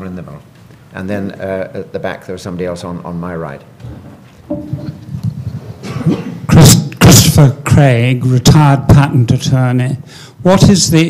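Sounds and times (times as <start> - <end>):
man coughing into a microphone: 5.8 - 6.8.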